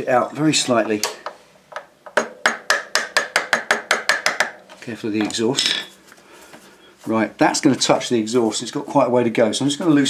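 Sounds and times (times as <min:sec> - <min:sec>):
hammer tapping metal: 0:00.8 - 0:05.9.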